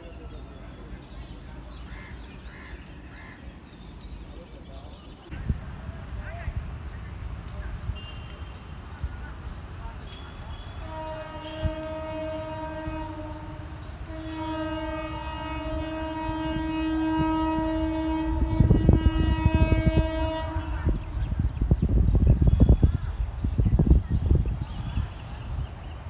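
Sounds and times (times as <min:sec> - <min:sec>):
low buffeting rumble: 0:00.0 - 0:26.0
train horn blasts: 0:10.1 - 0:21.3.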